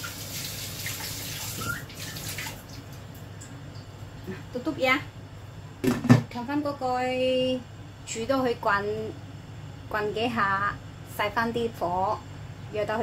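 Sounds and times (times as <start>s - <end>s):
woman talking: 4.3s - 5.1s, 6.2s - 9.2s, 9.9s - 13.0s.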